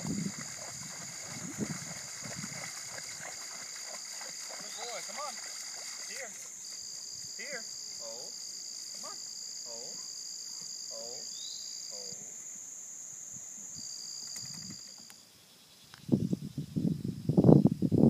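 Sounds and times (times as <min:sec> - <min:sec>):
rough rumbling on microphone: 0:00.0 - 0:03.2, 0:16.0 - 0:18.0.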